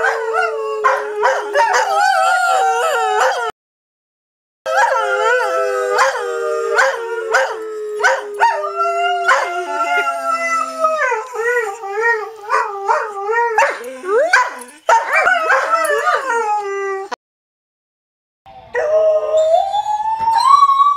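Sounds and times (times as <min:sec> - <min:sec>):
dog howling: 0:00.0 - 0:03.5, 0:04.7 - 0:17.2.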